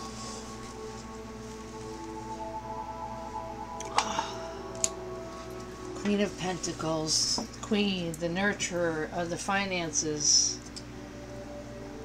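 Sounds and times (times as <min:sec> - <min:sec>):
soft instrumental music: 0:00.0 - 0:08.1, 0:10.3 - 0:12.0.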